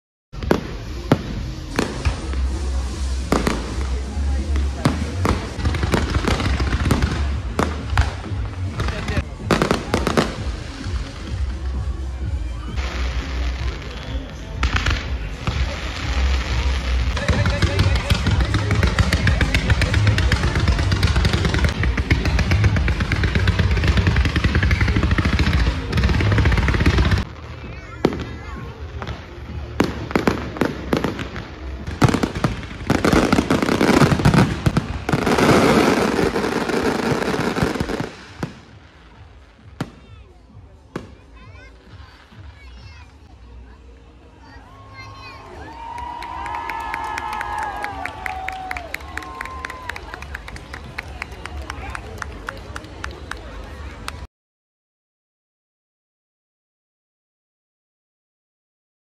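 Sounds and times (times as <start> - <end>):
firework launches: 0.4 - 11.5, 12.7 - 40.2
firework bangs: 0.4 - 11.6, 12.7 - 42.5
music: 0.4 - 54.2.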